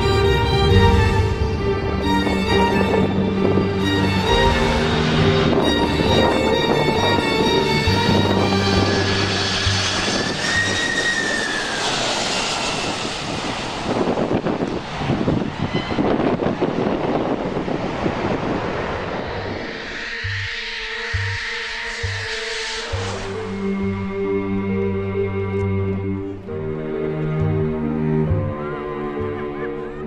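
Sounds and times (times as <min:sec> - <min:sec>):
background music: 0:00.0 - 0:11.0, 0:20.1 - 0:30.0
jet engines roaring overhead: 0:00.0 - 0:30.0.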